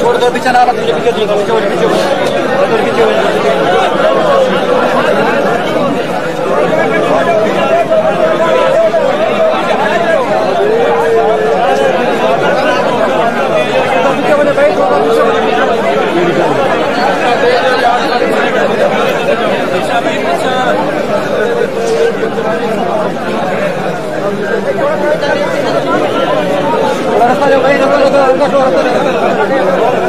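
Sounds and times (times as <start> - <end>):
crowd of men talking: 0.0 - 30.0.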